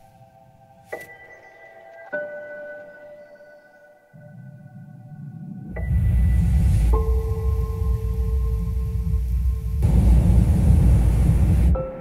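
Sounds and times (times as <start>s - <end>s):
deep rumble: 4.5s - 12.0s
broad rushing noise: 5.6s - 12.0s.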